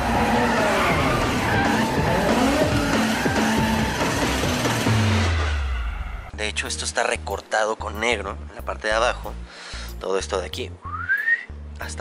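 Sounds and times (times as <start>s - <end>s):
car engine revving: 0.0s - 6.3s
soundtrack music: 0.0s - 6.9s.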